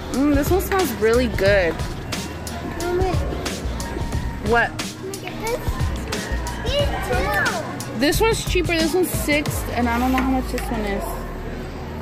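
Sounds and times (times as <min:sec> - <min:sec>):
background music: 0:00.0 - 0:12.0
indistinct voices: 0:00.0 - 0:12.0
child's high-pitched voice: 0:05.2 - 0:05.8, 0:06.6 - 0:07.7.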